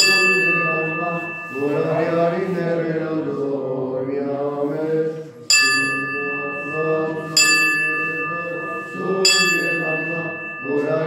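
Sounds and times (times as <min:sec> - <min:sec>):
bell ringing: 0:00.0 - 0:03.4, 0:05.5 - 0:11.0
man singing chant: 0:00.0 - 0:11.0.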